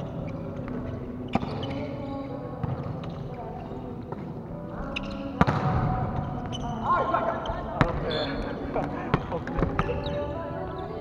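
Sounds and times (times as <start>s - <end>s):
players calling out: 6.2s - 10.3s.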